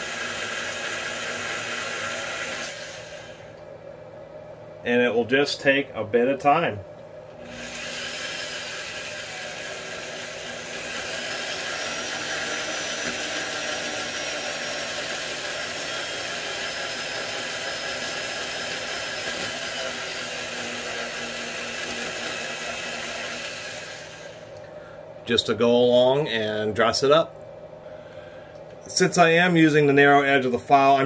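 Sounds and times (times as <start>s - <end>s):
electric drill running: 0.0s - 3.5s, 7.4s - 24.5s
file scraping commutator: 7.4s - 24.4s.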